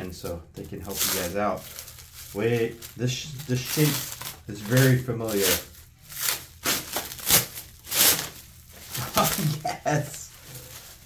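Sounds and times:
plastic wrapping crinkling: 0:00.6 - 0:11.0.

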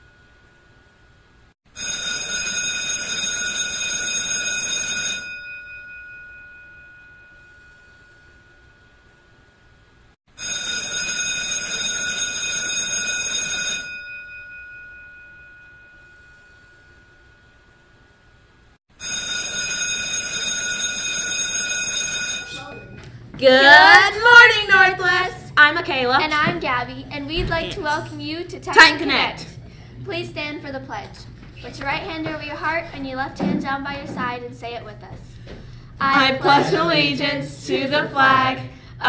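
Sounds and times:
electric bell ringing: 0:01.7 - 0:09.4, 0:10.3 - 0:23.2.

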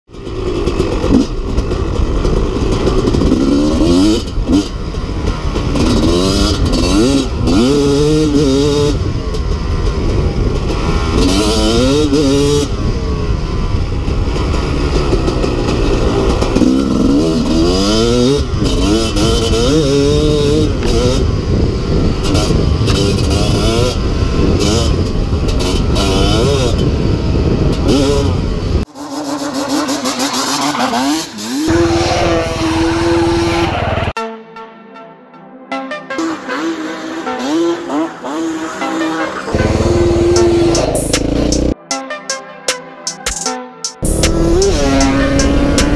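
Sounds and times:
dirt bike engine revving: 0:00.1 - 0:34.2, 0:36.2 - 0:41.8, 0:44.0 - 0:45.9
wind noise on microphone: 0:00.9 - 0:28.9, 0:44.0 - 0:45.9.

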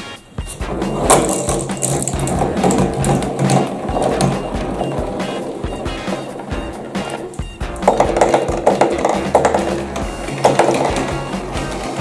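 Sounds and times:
background music: 0:00.0 - 0:12.0
marbles rolling and clicking: 0:00.4 - 0:12.0.

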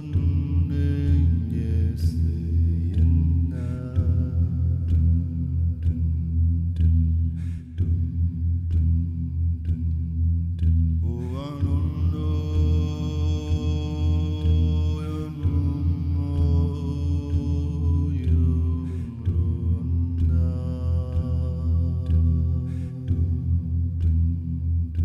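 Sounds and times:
man chanting held vowel notes: 0:00.0 - 0:06.0, 0:11.0 - 0:24.1.

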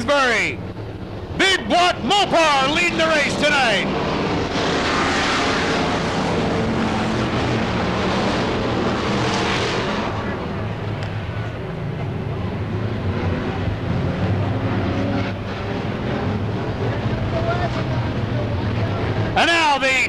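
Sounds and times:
race cars at full throttle: 0:00.0 - 0:20.0.

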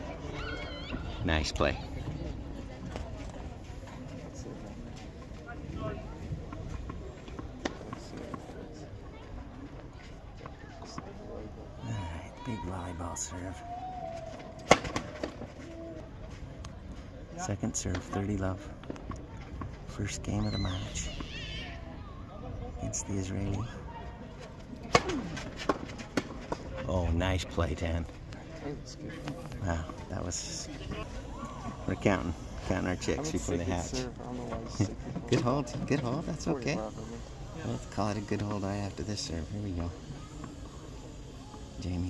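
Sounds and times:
faint voices: 0:00.0 - 0:42.0.

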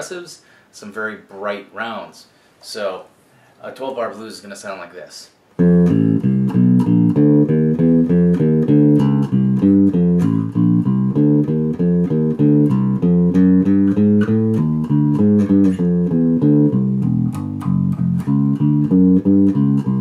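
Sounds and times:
fingerpicked electric bass: 0:05.6 - 0:20.0.

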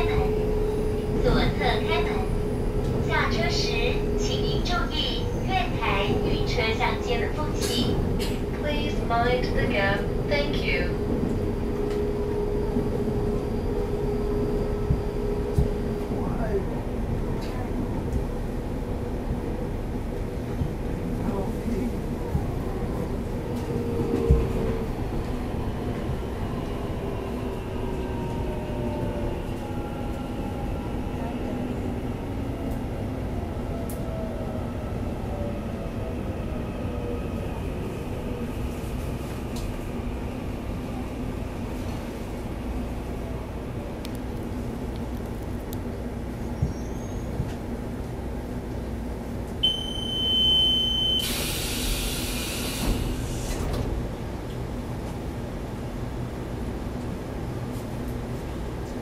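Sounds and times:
steady high beep: 0:49.6 - 0:51.3
train doors hissing open: 0:50.7 - 0:54.0.

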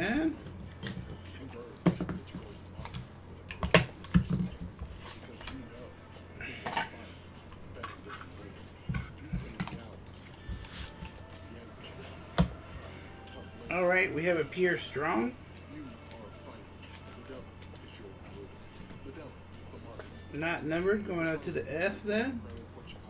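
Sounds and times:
soft rustling of cards: 0:07.4 - 0:12.1.

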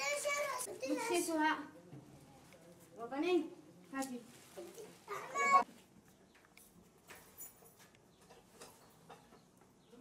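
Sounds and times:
small child's high-pitched voice: 0:00.0 - 0:01.3, 0:05.1 - 0:05.7.

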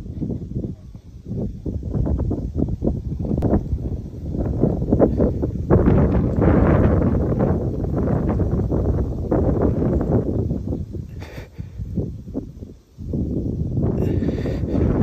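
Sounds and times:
rustling and crackling on microphone: 0:00.0 - 0:15.0.

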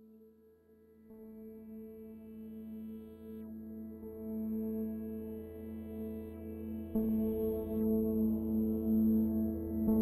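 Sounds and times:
ambient music with held tones: 0:00.0 - 0:10.0.

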